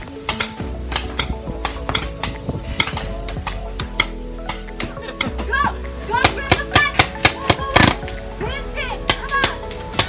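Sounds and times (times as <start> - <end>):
music: 0.0 - 10.0
voices: 2.9 - 9.9.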